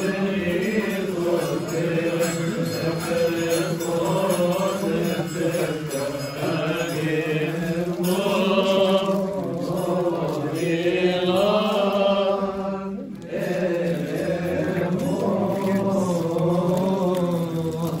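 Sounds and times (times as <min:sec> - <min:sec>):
monks chanting a hymn: 0:00.0 - 0:18.0.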